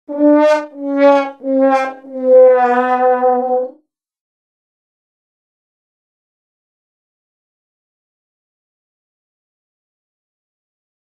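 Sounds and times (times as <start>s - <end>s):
sad trombone descending notes: 0.1s - 3.8s.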